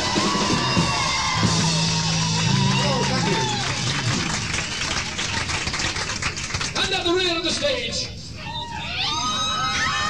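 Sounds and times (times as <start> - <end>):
audience applauding and cheering: 0.0 - 7.0.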